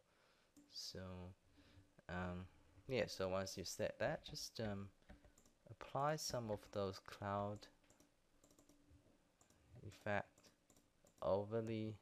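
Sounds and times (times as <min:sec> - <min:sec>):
faint computer clicks: 0:07.5 - 0:08.8.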